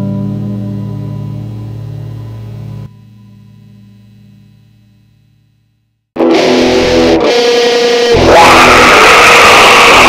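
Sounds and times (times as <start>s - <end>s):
heavy metal electric guitars: 6.2s - 10.0s
sliding sustained guitar note: 6.2s - 10.0s.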